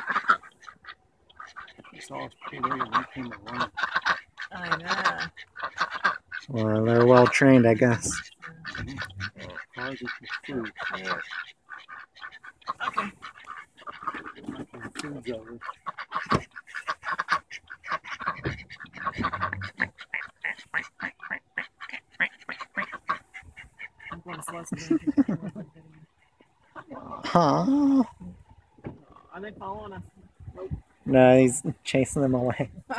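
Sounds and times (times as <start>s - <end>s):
ducks quacking: 0.0s - 32.9s.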